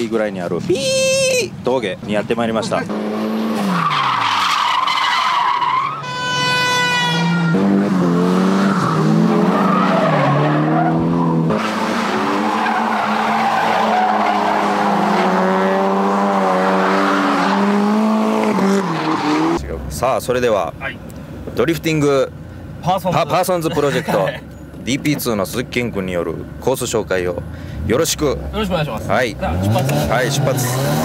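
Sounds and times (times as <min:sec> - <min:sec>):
car engines revving: 0:00.0 - 0:31.0
tyres squealing: 0:03.6 - 0:15.4.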